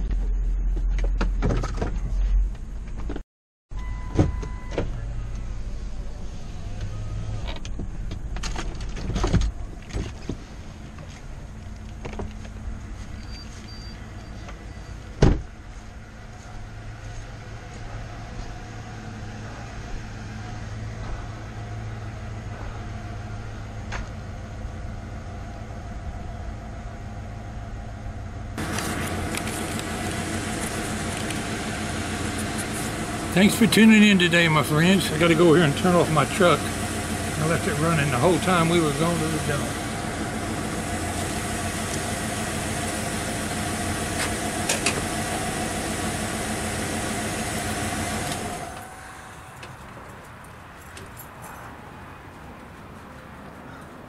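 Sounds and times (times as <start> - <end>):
car engine idling: 4.6 - 51.2.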